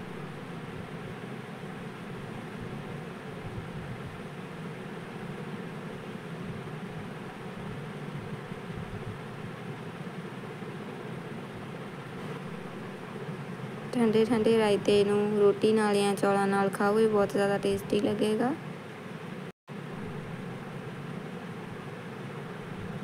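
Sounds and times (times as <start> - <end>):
steady background noise: 0.0 - 23.0.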